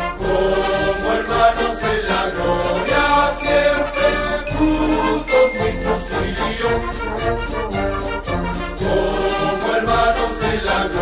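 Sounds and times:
choir singing marching song: 0.0 - 11.0
musical accompaniment: 0.0 - 11.0.

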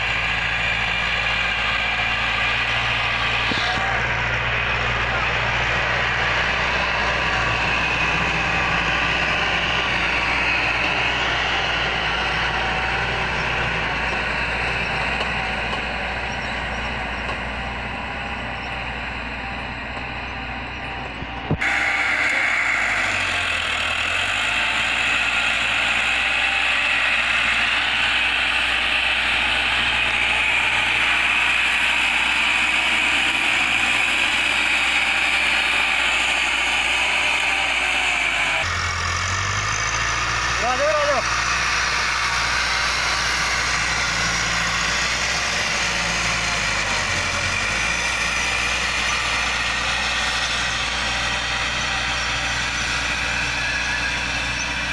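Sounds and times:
tractor diesel engine running: 0.0 - 54.9.

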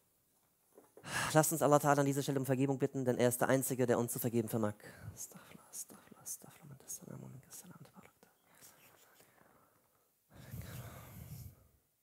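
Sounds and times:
man whispering: 4.8 - 11.7.

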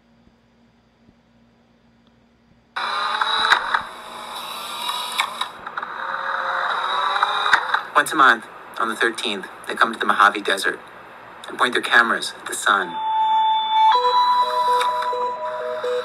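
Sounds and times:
outdoor noise: 0.0 - 12.9
instant cameras clicking and whirring: 2.8 - 8.9.

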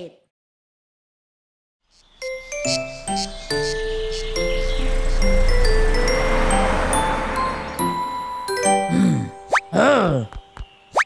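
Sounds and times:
cartoon character puzzled grunt: 8.9 - 10.4
cartoon rising whistle plop: 9.4 - 9.8.

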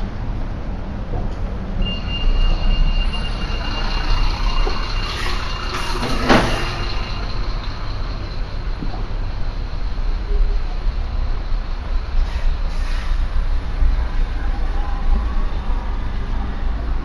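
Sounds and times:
steady high squeal: 1.8 - 16.4.

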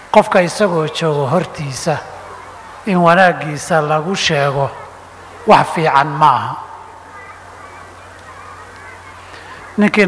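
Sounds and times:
faint indistinct background sounds: 0.0 - 10.0.

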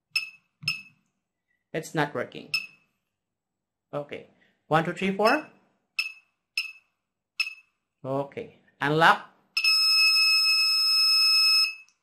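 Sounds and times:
long high-pitched buzzer beep: 9.6 - 11.9.

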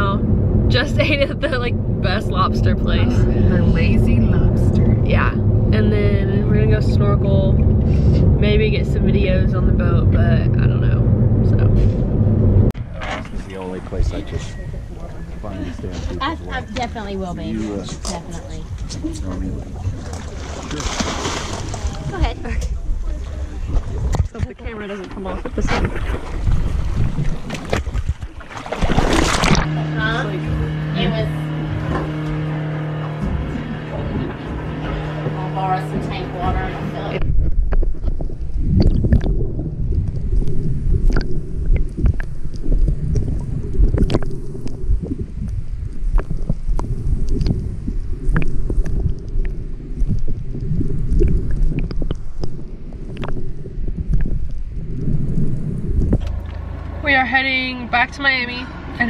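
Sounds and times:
muffled underwater rumble: 0.0 - 59.0
steady multi-tone hum: 0.0 - 59.0
underwater clicks and crackles: 18.0 - 29.7, 37.1 - 56.9.

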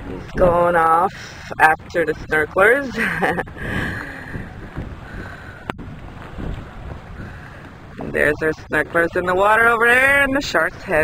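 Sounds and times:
water sloshing against boat hull: 0.0 - 11.0
wind buffeting microphone: 0.0 - 11.0.

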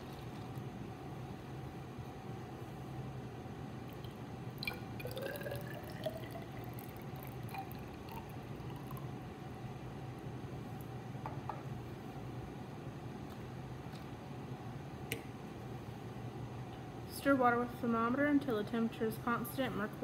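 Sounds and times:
water pouring into cylinder: 3.9 - 9.2.

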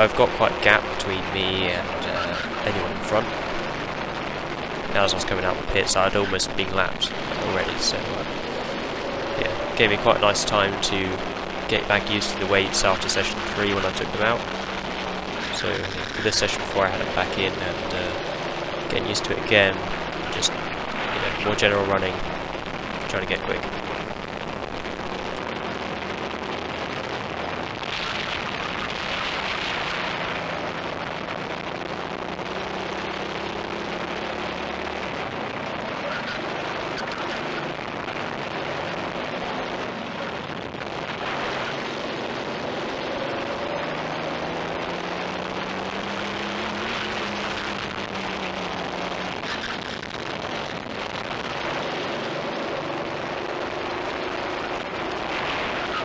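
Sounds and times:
racing kart engine: 0.0 - 26.6, 32.0 - 56.0.

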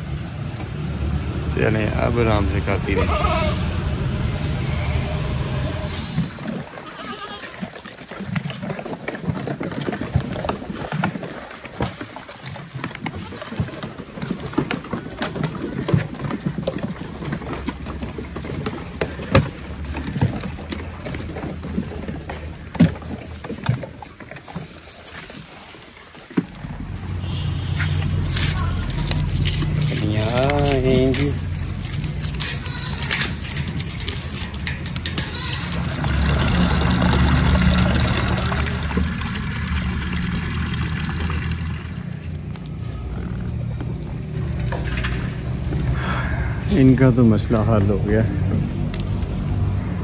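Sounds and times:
goats moving knocks and clatter: 0.0 - 46.0
low steady rumble: 26.5 - 50.0.

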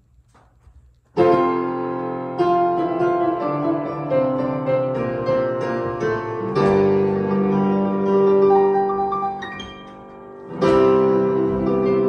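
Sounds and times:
piano chords: 1.1 - 12.0.

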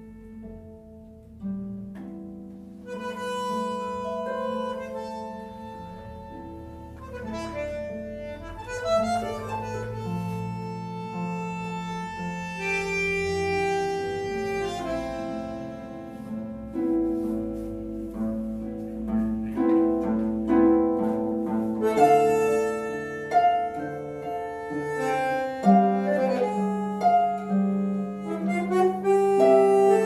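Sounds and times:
bandoneon playing tango: 0.0 - 30.0
harp plucking: 0.0 - 30.0.

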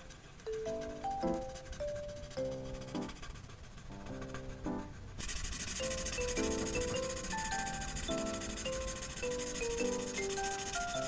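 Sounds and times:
soft music with plucked melody: 0.0 - 2.9, 5.8 - 11.0
marker scrubbing on paper: 0.8 - 11.0.

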